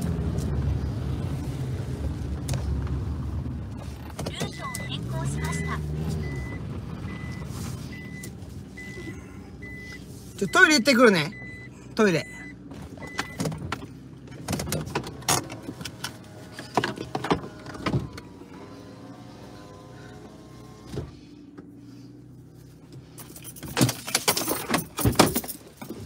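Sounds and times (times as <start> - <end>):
knocks and rattles: 23.2 - 26.0.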